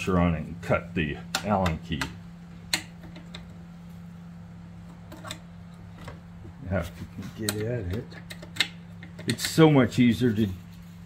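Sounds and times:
steady low hum: 0.0 - 11.0.

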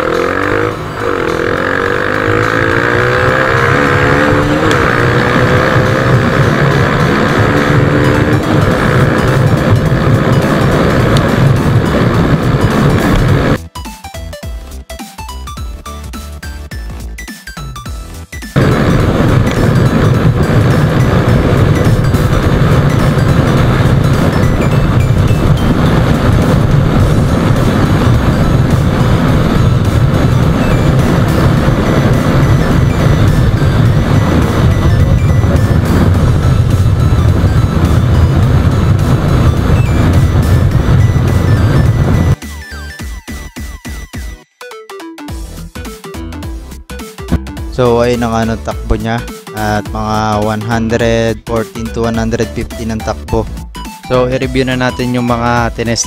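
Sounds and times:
motorcycle engine: 0.0 - 13.6, 18.5 - 44.2
wind rush over microphone: 2.3 - 13.6, 18.6 - 42.4
electronic music: 31.6 - 56.0.

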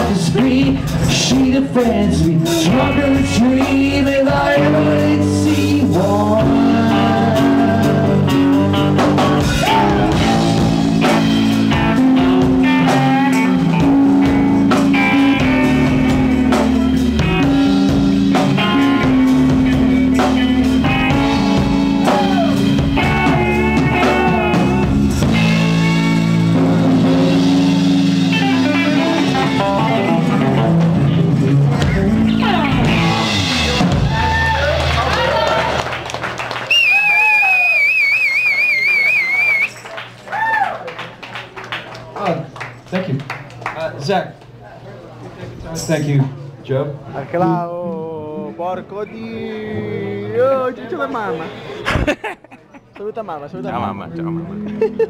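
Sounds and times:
live rock band playing: 0.0 - 40.2
people shouting: 9.5 - 10.2, 22.0 - 22.7.

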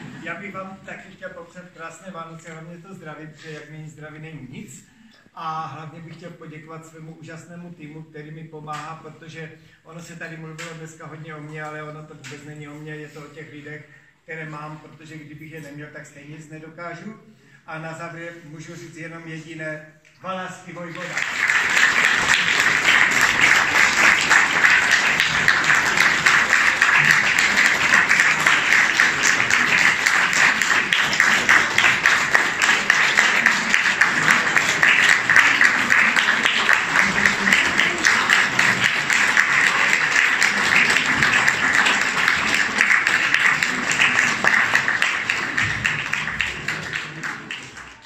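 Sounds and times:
audience applauding: 20.9 - 48.0.

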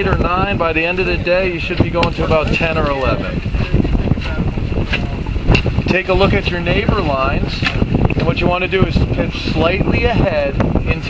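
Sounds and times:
boat engine rumble: 0.0 - 11.0
wind buffeting microphone: 0.0 - 11.0.

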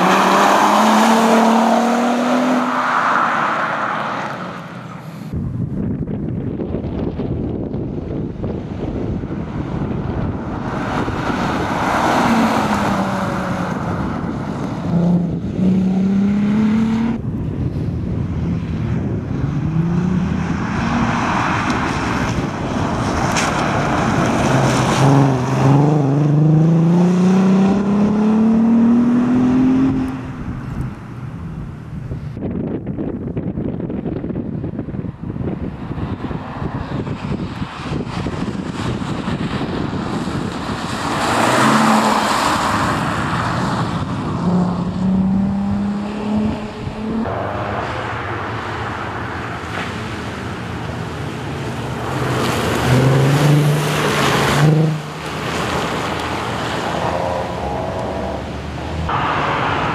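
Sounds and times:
dull rumbling noise: 12.4 - 24.7
rally car engine accelerating: 14.6 - 17.2, 23.1 - 30.3, 40.3 - 48.3.

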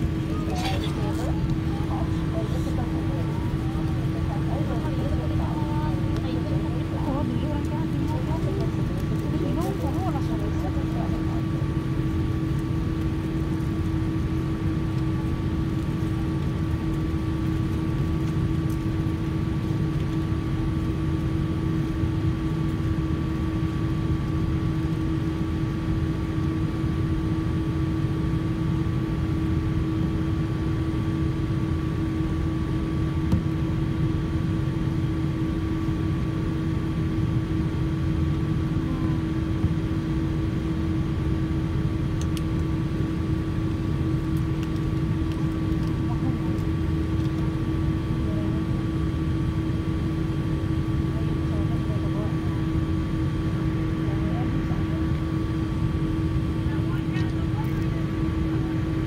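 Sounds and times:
steady cabin hums: 0.0 - 26.5
airliner engines rumbling: 0.0 - 59.0.

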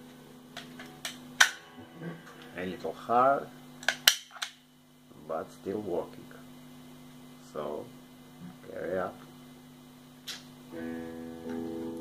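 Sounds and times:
steady electrical hum: 0.0 - 12.0
pistol handling clicks: 3.8 - 4.6.

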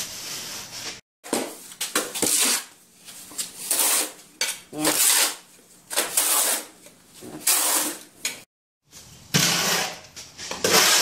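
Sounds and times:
hoe scraping through mortar: 2.0 - 8.1, 9.3 - 11.0.

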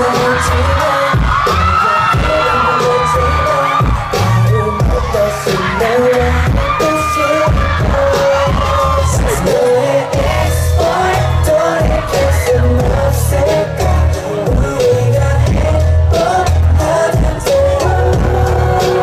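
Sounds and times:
group singing pop song live: 0.0 - 19.0
heavy bass beat: 0.0 - 19.0.

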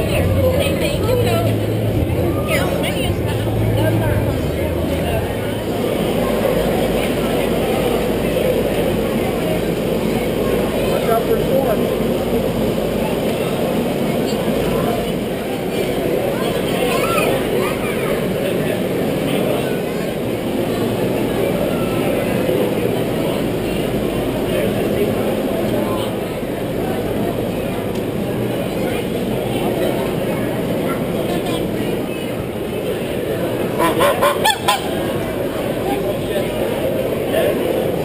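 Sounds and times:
murmur of crowd: 0.0 - 38.0
geese honking: 33.7 - 35.1.

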